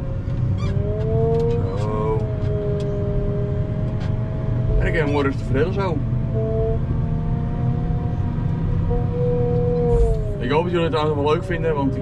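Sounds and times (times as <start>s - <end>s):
loader engine rumbling with whine: 0.0s - 12.0s.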